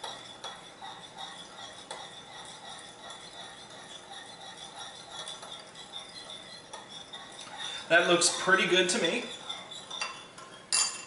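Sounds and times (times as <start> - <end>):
spoon clinking against bowl: 0.0 - 7.6, 8.9 - 11.0
spoon scraping in bowl: 0.0 - 11.0.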